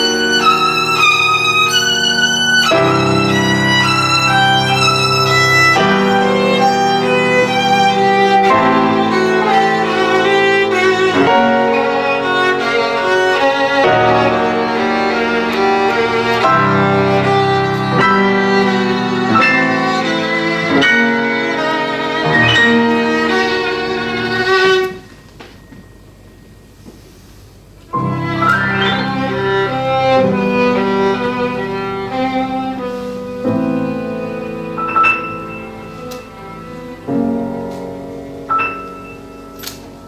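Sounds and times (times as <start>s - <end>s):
violin bowing long notes: 0.0s - 25.2s, 28.0s - 37.5s
piano chords: 0.0s - 40.0s.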